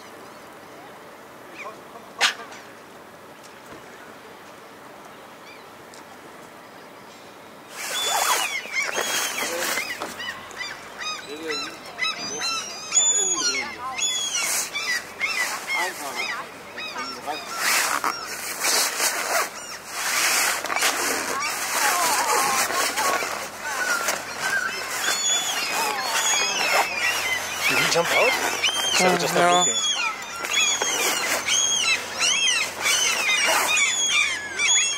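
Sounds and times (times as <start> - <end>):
chorus of birds calling: 7.7 - 34.9.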